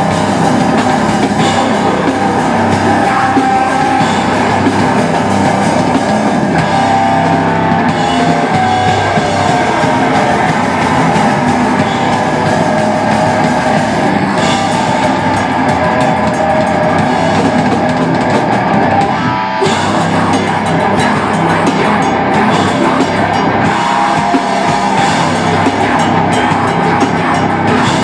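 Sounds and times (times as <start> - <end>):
bass guitar: 0.0 - 28.0
distorted electric guitar: 0.0 - 28.0
drum kit: 0.0 - 28.0.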